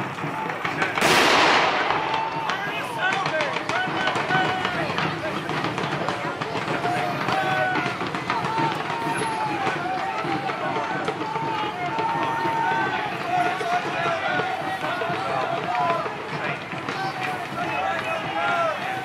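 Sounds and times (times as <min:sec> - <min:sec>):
crowd shouting and yelling: 0:00.0 - 0:19.0.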